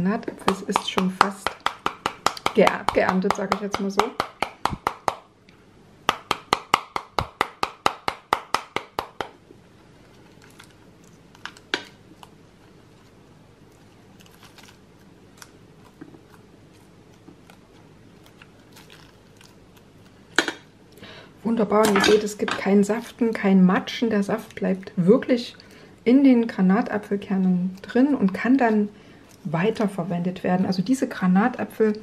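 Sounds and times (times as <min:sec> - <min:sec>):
spoon knocking pomegranate rind: 0:00.4 - 0:05.2.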